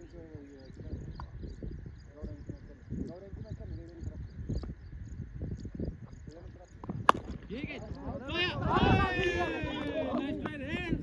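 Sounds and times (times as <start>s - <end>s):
distant players calling out: 7.5s - 11.0s.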